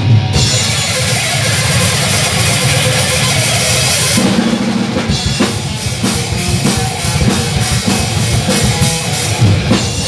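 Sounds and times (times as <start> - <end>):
distorted electric guitar: 0.0 - 10.0.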